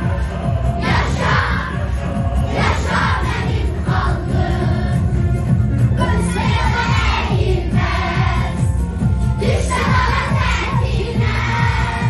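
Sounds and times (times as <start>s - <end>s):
children's choir shouting: 0.0s - 4.9s, 6.0s - 8.6s, 9.4s - 12.0s.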